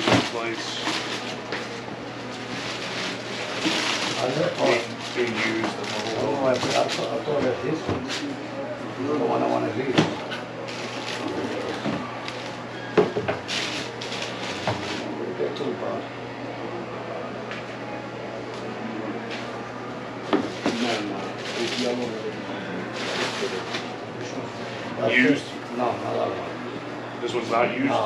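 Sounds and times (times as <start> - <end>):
paper rustling: 0.0 - 7.2
low chatter: 0.0 - 28.0.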